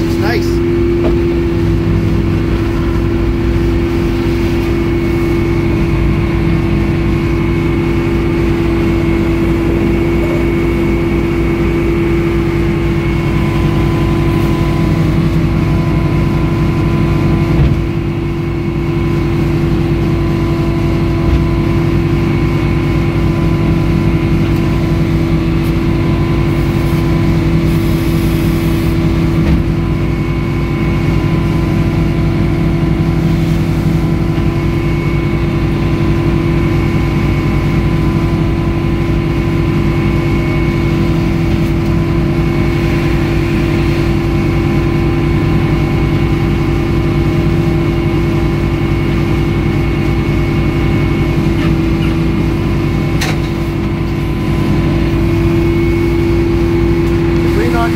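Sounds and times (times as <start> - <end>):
saw whine: 0.0 - 57.9
sawmill engine drone: 0.0 - 57.9.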